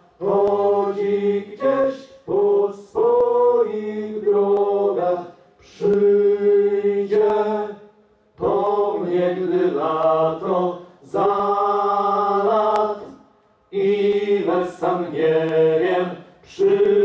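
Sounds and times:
voices singing in harmony: 0.0s - 17.0s.

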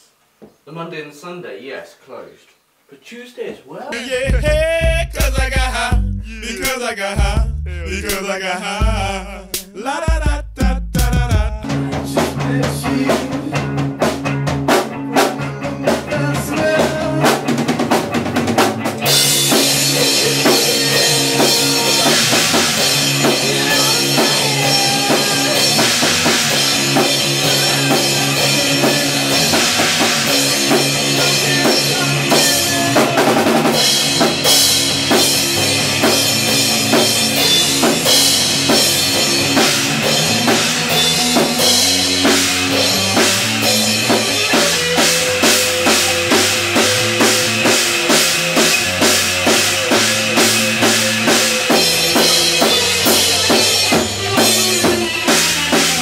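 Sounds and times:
drum kit with cymbals: 4.2s - 8.2s, 8.8s - 56.0s
electric guitars: 11.6s - 56.0s.

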